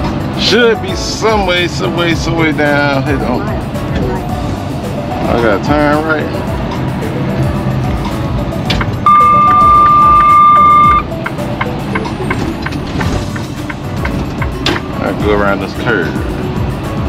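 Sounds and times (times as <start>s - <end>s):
music playing: 0.0s - 17.0s
truck engine and road noise: 0.0s - 17.0s
high electronic beep: 9.1s - 11.1s.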